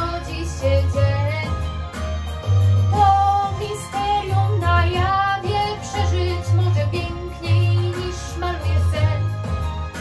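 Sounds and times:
woman singing: 0.0s - 1.8s, 2.9s - 9.5s
musical accompaniment with bass: 0.0s - 10.0s.

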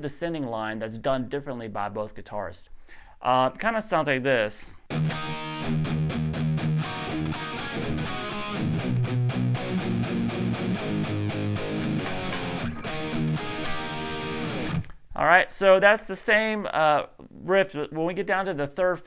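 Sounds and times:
distorted electric guitar riff: 4.9s - 15.0s.

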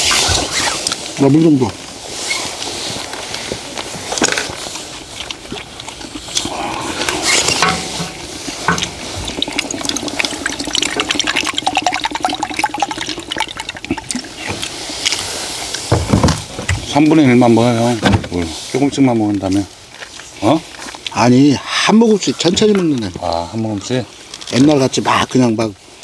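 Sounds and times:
water pouring into metal cup: 6.9s - 15.8s.

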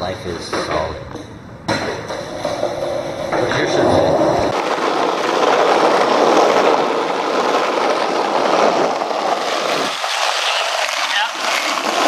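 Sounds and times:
skateboard wheels rolling on asphalt: 1.7s - 12.0s.

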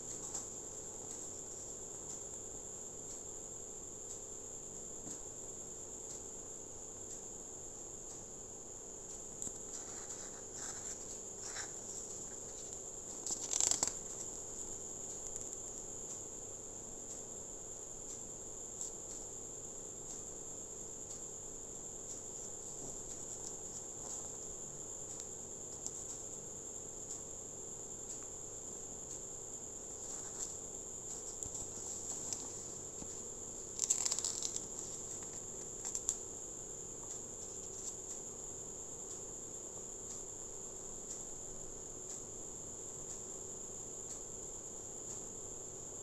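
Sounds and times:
paper pages turning: 9.7s - 14.3s, 30.0s - 36.2s.

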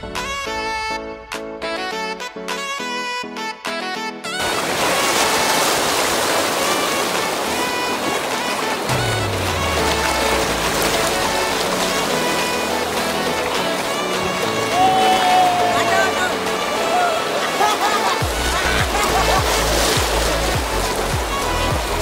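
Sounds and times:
background music: 0.0s - 22.0s
river rapids rushing: 4.4s - 22.0s.

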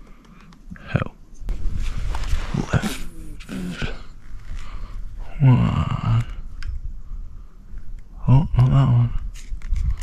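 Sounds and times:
man murmuring: 2.5s - 4.2s, 5.2s - 6.5s, 8.2s - 9.3s
man humming: 2.6s - 4.2s, 5.2s - 6.4s.

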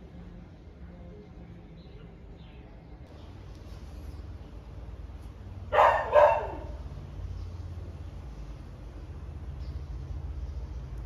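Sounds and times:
low steady hum: 0.0s - 11.0s
dog barking: 5.7s - 6.8s.

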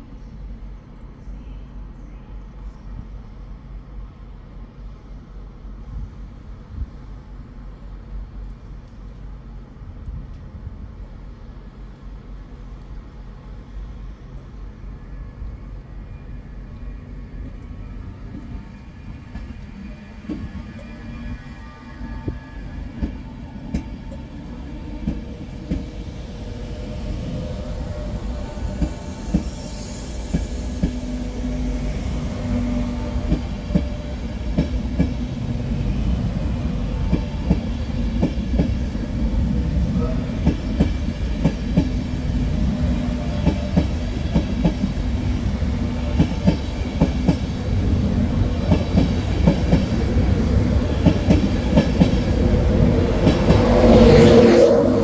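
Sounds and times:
electric locomotive hum: 0.0s - 55.0s
train rumble: 0.0s - 55.0s.

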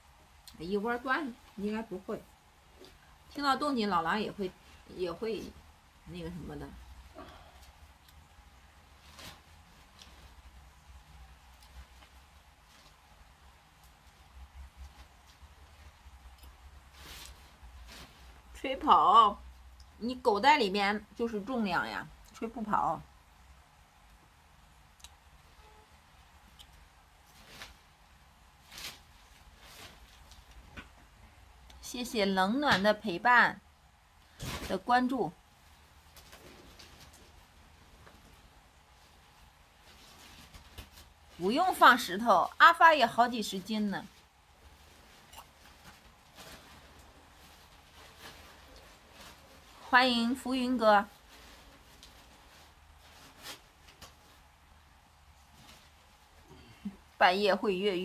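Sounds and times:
low room hum: 0.0s - 58.0s
tent fabric rustling: 8.7s - 19.6s, 27.2s - 30.8s, 34.3s - 56.5s.

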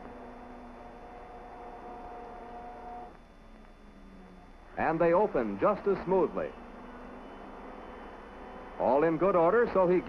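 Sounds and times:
electric actuator motor humming: 0.0s - 10.0s.

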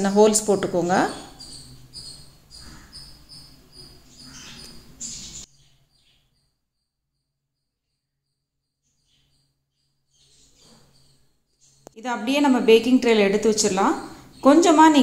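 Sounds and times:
high chirping: 0.0s - 6.6s, 8.8s - 15.0s.

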